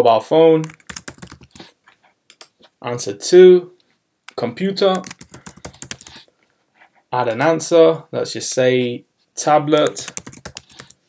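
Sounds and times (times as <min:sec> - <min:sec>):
computer keyboard typing: 0:00.6 - 0:01.7, 0:04.9 - 0:06.3, 0:09.8 - 0:11.0.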